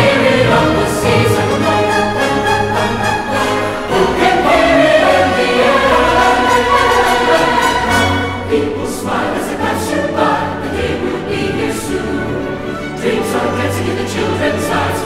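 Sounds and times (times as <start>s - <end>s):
background music with choir: 0.0s - 15.0s.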